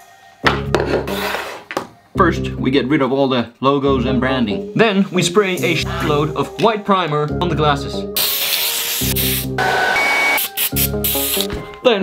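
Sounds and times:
background music: 0.0s - 12.0s
aerosol can spraying: 8.2s - 11.6s.

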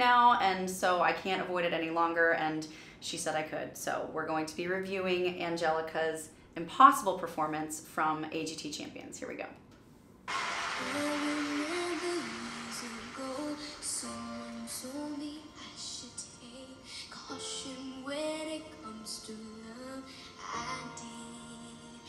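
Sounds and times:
girl singing a ballad: 10.4s - 22.0s
soft instrumental backing: 10.9s - 22.0s.

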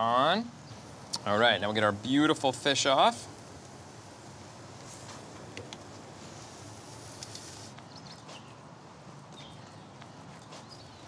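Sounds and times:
steady low hiss: 0.0s - 11.0s.

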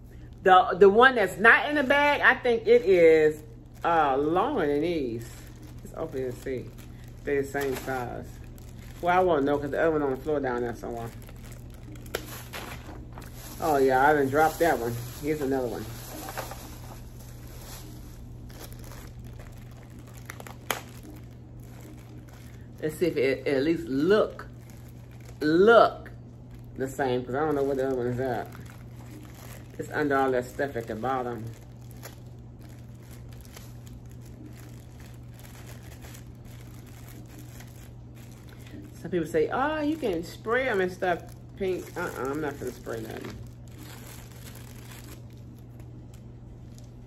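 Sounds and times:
steady low hum: 0.0s - 47.0s
plastic packaging crinkling: 1.6s - 47.0s.

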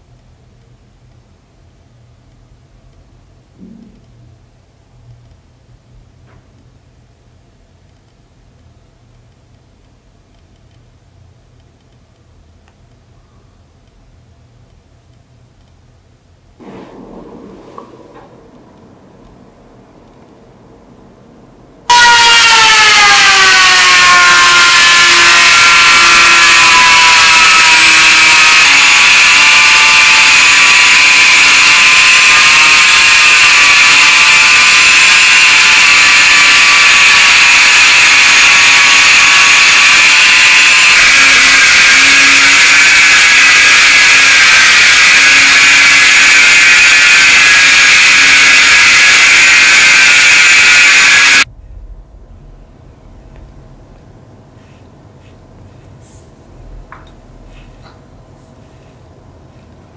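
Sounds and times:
rotary tool whine on metal: 21.8s - 51.5s.

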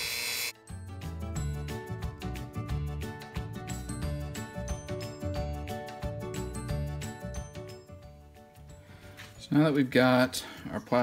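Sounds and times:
rotary tool high whine: 0.0s - 0.6s
background music: 0.5s - 11.0s.

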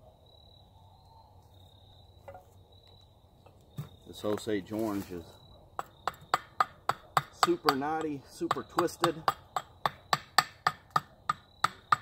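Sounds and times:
hatchet chopping wood: 5.8s - 12.0s.

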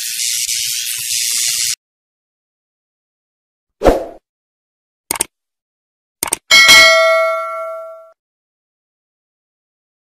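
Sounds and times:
double mouse click: 5.1s - 5.3s, 6.2s - 6.4s
bright bell ding: 6.5s - 8.2s.

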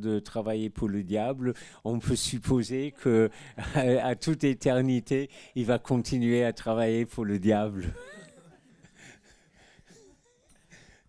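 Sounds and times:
faint chuckles: 7.8s - 9.1s.

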